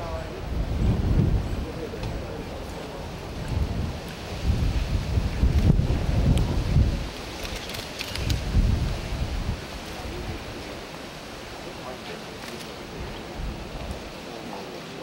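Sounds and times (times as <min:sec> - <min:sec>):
wind buffeting microphone: 0:00.0 - 0:14.4
camera shutter clicks: 0:07.4 - 0:08.4.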